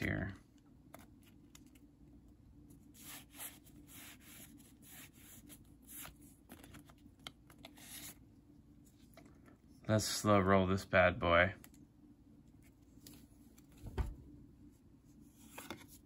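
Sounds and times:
low room hum: 0:00.0 - 0:16.0
trading cards scraping and rubbing: 0:02.8 - 0:08.2.

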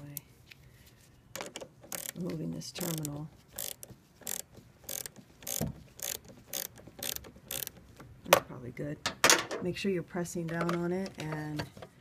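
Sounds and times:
socket ratchet clicking: 0:01.4 - 0:07.9.

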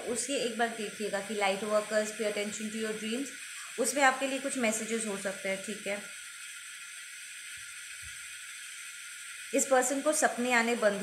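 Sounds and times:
background hiss: 0:00.0 - 0:11.0
faint high whine: 0:00.0 - 0:11.0.

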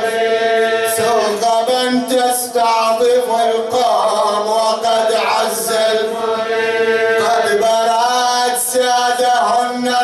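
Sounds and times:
man chanting a lament: 0:00.0 - 0:06.4, 0:07.0 - 0:10.0.

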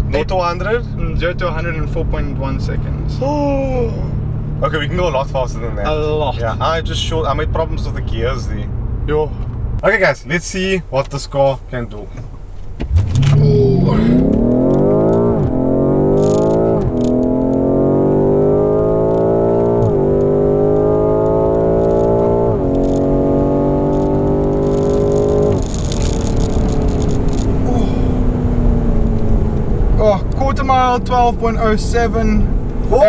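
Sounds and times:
car engine at full throttle: 0:00.0 - 0:09.8, 0:12.1 - 0:33.0
gear upshifts: 0:12.1 - 0:33.0.

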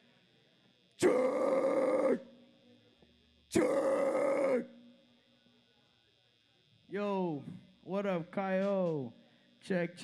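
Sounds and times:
screamed vocal bursts through pa: 0:01.0 - 0:02.3, 0:03.5 - 0:04.8.

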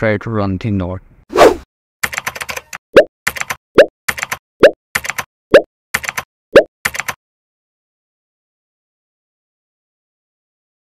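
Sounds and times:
sharp clicks: 0:05.0 - 0:05.3, 0:06.0 - 0:07.2.

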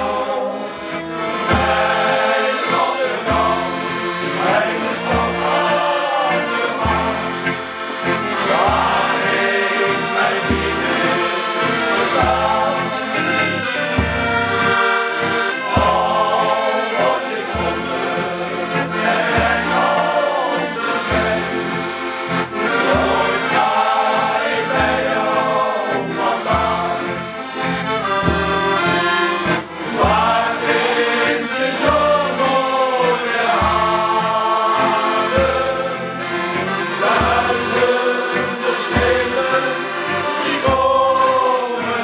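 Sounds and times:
accordions: 0:00.0 - 0:42.0
men singing together: 0:00.0 - 0:42.0.

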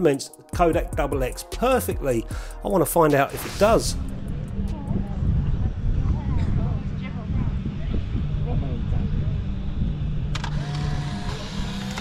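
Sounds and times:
low outdoor rumble: 0:03.6 - 0:12.0
camera motor whirring: 0:10.3 - 0:12.0.

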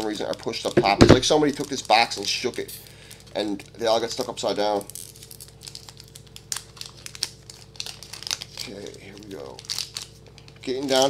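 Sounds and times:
wrapper crinkling and tearing: 0:00.0 - 0:11.0.

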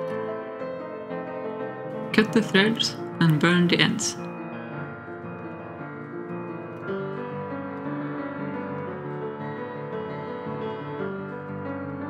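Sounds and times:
background piano music: 0:00.0 - 0:12.0.

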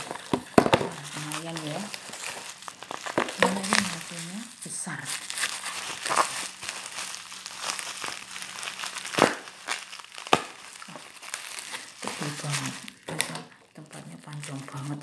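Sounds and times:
bubble wrap crinkling: 0:00.0 - 0:15.0
bubble wrap snaps: 0:00.0 - 0:15.0.

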